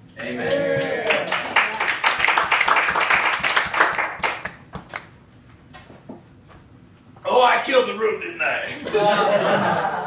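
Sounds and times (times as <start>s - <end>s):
people clapping: 0.2s - 5.2s.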